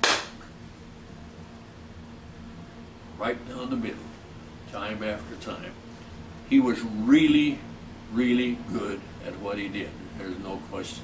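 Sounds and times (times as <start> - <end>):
hand clap: 0.0 - 0.5.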